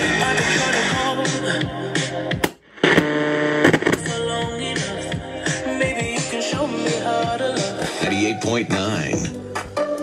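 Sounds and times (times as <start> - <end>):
radio static with crackles: 2.7 - 4.0.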